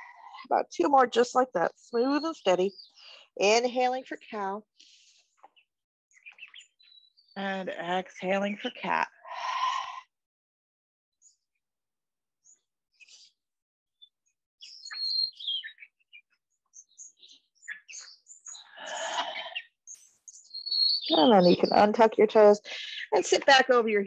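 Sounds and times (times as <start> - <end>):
pet bird chirping: 2.0 - 4.6, 6.2 - 7.3, 14.6 - 24.0.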